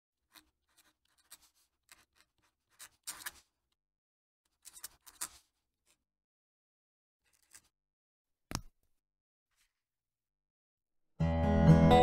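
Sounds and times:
pen nib scratching paper: 0.2 - 3.6, 4.5 - 6.0.

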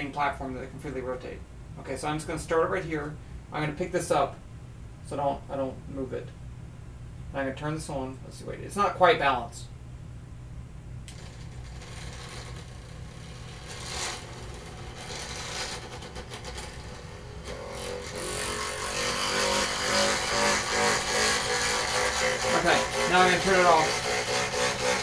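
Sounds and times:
electric motor whirring and rattling: 11.1 - 25.0.

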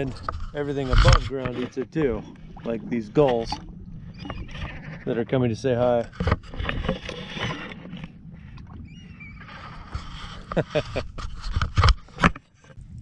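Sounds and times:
water lapping against boat hull: 0.0 - 13.0.

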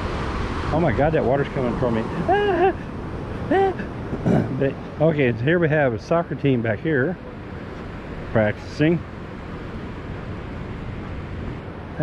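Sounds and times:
ocean surf on a beach: 0.0 - 12.0.

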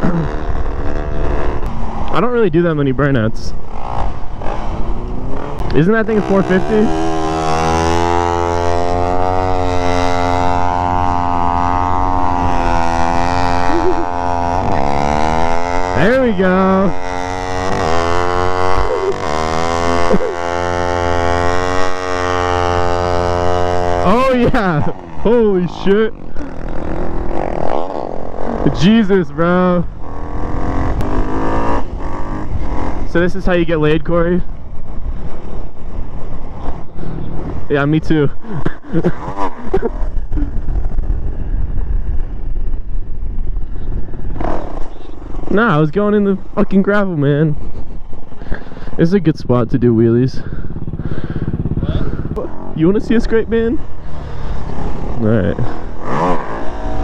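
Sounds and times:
low wind rumble on microphone: 0.0 - 57.0
motorcycle engines revving high: 0.0 - 57.0.

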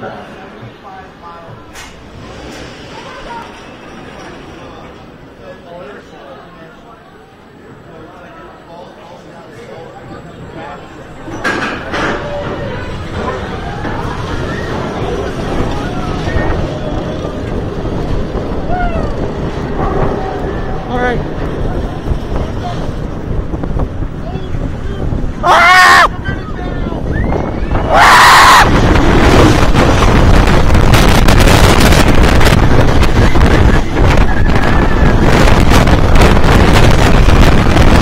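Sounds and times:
faint voices: 0.0 - 30.8, 31.9 - 38.0
roller coaster lift hill rumble: 0.0 - 38.0
steady background noise: 0.0 - 38.0
wind on microphone: 12.3 - 38.0.

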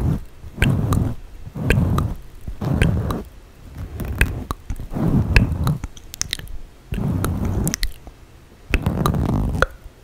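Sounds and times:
muffled crackle: 0.0 - 9.8
tongue and lip clicks: 0.6 - 3.3, 4.0 - 8.1, 8.7 - 9.9.

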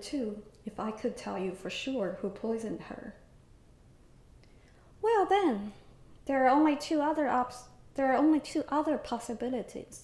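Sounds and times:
woman reading aloud: 0.0 - 3.2, 5.0 - 10.0.

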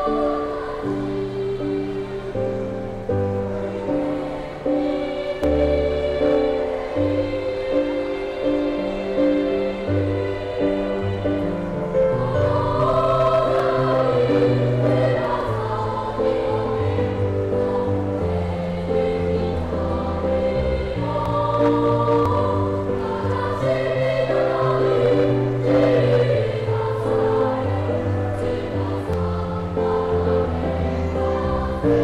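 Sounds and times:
children's choir singing: 0.0 - 32.0.

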